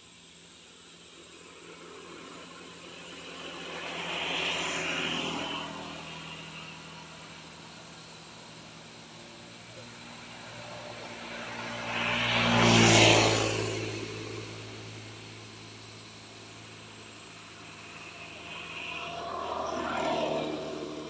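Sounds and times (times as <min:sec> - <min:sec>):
quieter vehicle passing: 0:00.3 - 0:21.0
vehicle passing by: 0:01.3 - 0:21.0.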